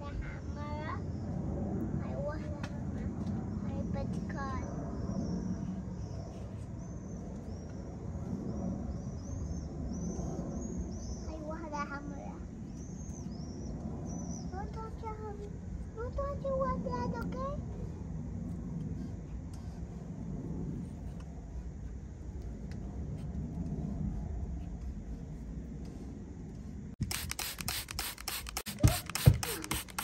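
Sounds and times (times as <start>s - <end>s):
steady low rumble: 0.0s - 29.1s
high-pitched voices calling: 28.7s - 30.0s.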